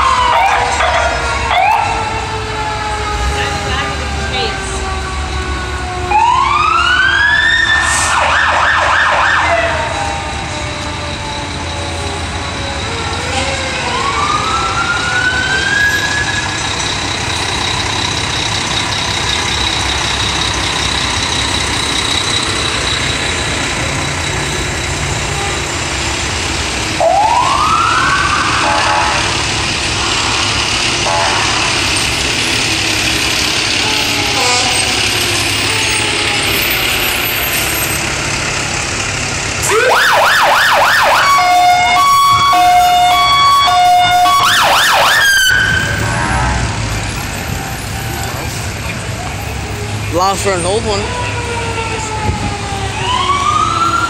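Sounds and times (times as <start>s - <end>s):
fire truck sirens: 0.0s - 54.0s
truck engines running: 0.0s - 54.0s.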